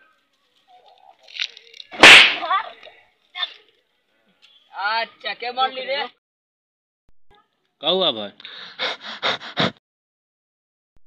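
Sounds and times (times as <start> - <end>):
loud crack with hissing tail: 2.0 - 2.5.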